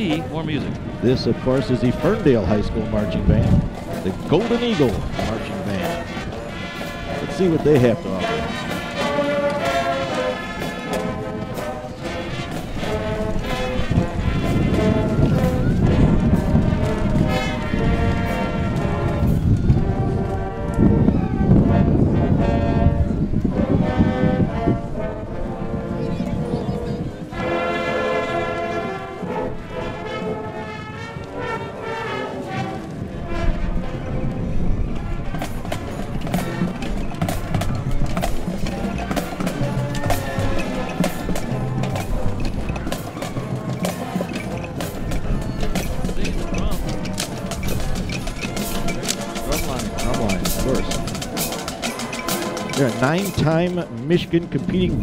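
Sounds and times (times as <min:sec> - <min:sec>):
marching band playing: 0:00.0 - 0:55.0
snare drum strokes: 0:35.4 - 0:53.8.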